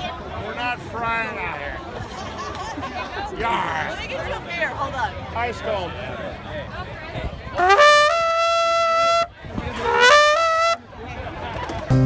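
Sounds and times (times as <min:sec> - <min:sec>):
outdoor crowd chatter: 0:00.0 - 0:12.0
bugle notes: 0:07.6 - 0:10.8.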